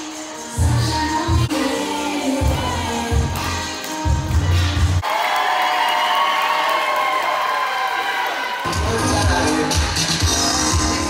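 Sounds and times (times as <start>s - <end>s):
music with heavy bass beat: 0.0s - 5.0s, 8.7s - 11.0s
crowd cheering and screaming: 5.0s - 9.6s.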